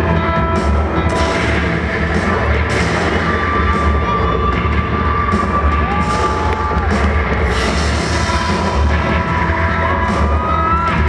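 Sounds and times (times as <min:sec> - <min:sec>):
crowd cheering and shouting: 0:00.0 - 0:11.0
intro music with bass drone: 0:00.0 - 0:11.0.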